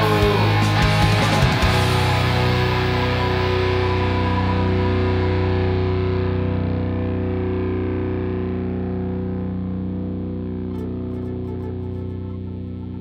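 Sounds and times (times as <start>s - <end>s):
distorted electric guitar chord: 0.0s - 13.0s.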